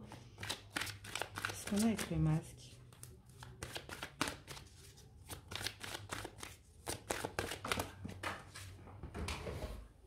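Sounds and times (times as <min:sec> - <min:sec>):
shuffling deck of cards: 0:00.4 - 0:02.2, 0:02.9 - 0:07.9.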